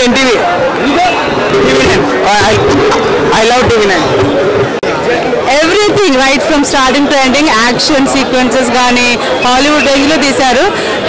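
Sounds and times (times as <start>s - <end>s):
crowd chatter: 0.0s - 11.0s
people talking: 0.0s - 11.0s.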